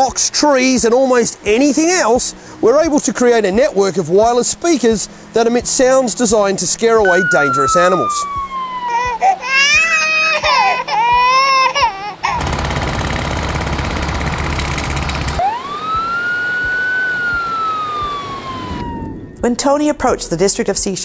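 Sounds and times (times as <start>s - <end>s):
sweeping siren tone: 7.0s - 9.3s, 15.4s - 19.4s
wavering animal deterrent wail: 7.1s - 12.5s.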